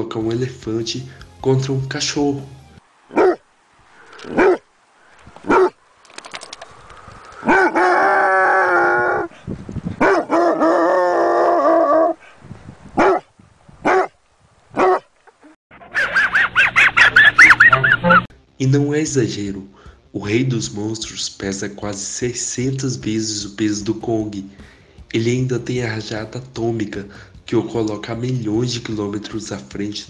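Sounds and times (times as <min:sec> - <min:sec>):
small dogs barking: 0:03.1 - 0:03.5, 0:04.2 - 0:04.7, 0:05.4 - 0:05.8, 0:07.4 - 0:07.9, 0:10.0 - 0:10.8, 0:13.0 - 0:15.1, 0:15.8 - 0:18.2
wavering yelping calls: 0:03.1 - 0:04.7, 0:07.3 - 0:09.3, 0:15.8 - 0:18.3
wheezy snickering laugh: 0:15.8 - 0:18.2.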